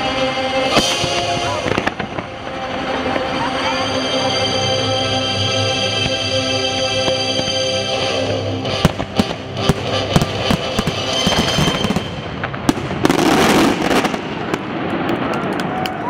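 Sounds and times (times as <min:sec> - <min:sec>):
fireworks bursting: 0:00.0 - 0:16.0.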